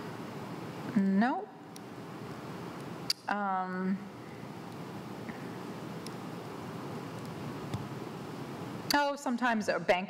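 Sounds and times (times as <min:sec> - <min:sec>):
woman speaking: 0:00.9 - 0:01.6, 0:03.3 - 0:04.1, 0:08.9 - 0:10.0.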